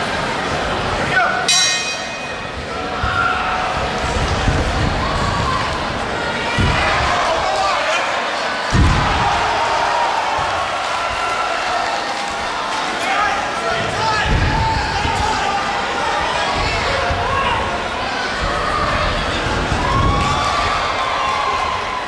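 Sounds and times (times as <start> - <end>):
spectators yelling and shouting: 0.0 - 22.0.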